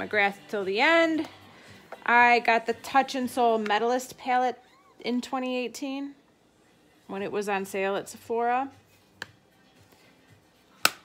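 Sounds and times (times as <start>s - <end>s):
plastic compact lid clicking: 10.8s - 11.0s.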